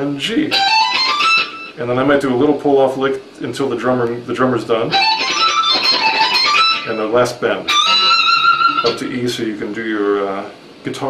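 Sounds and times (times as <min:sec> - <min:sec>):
electric guitar lick: 0:00.0 - 0:01.8, 0:04.9 - 0:09.0.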